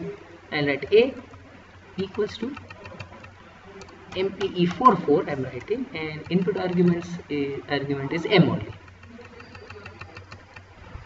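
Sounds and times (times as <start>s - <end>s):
steady low hum: 0.0s - 11.0s
keyboard keys tapping: 2.0s - 7.2s, 8.2s - 10.8s.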